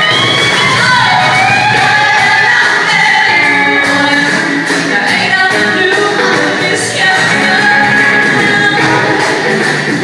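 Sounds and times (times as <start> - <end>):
electric and acoustic guitars: 0.0 - 10.0
woman singing blues: 0.6 - 9.6.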